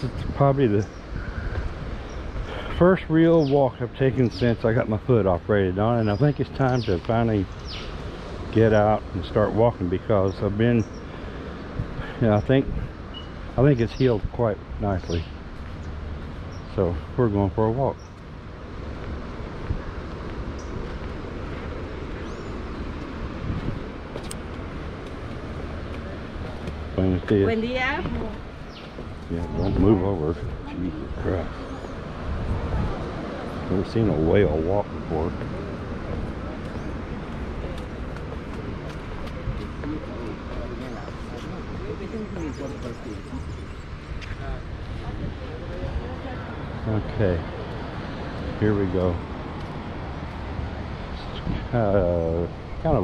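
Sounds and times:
distant surf: 0.0s - 53.0s
low outdoor rumble: 0.0s - 53.0s
wind: 0.0s - 53.0s
faint voices talking: 21.4s - 53.0s.

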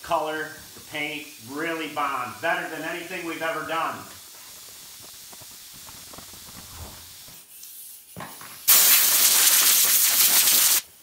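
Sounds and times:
pressurised spray hiss: 0.8s - 11.0s
towel rubbing leather seat: 6.5s - 7.1s.

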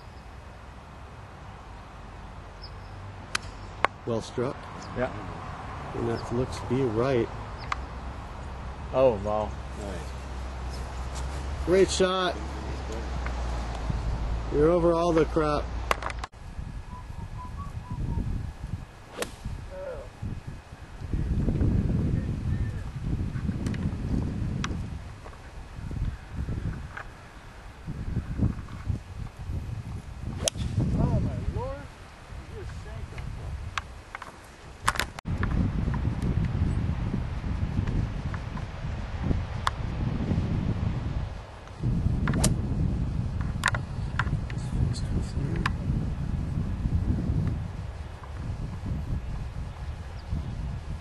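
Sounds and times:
wind rumbling on microphone: 0.0s - 51.0s
golf club striking ball: 19.1s - 19.6s, 30.4s - 30.8s, 42.2s - 42.6s.

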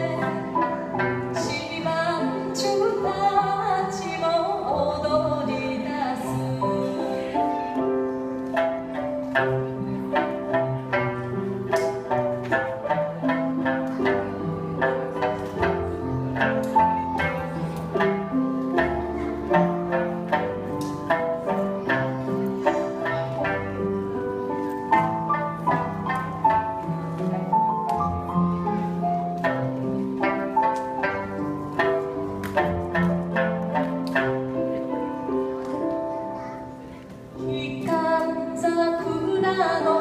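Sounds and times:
plucked string melody: 0.0s - 40.0s.

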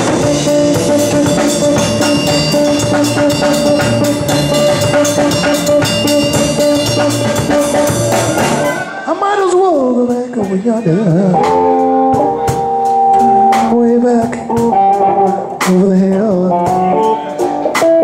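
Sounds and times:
drum kit beat: 0.0s - 18.0s.

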